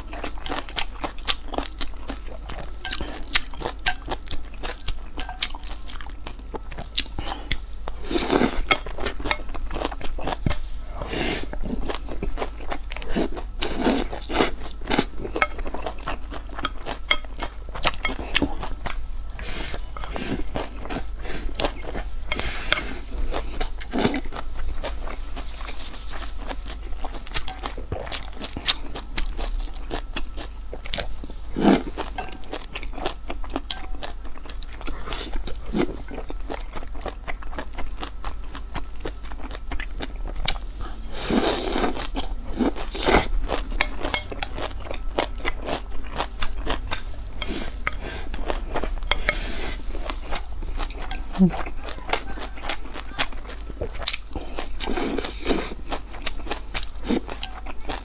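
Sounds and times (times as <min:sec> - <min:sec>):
person chewing food: 0:00.0 - 0:58.0.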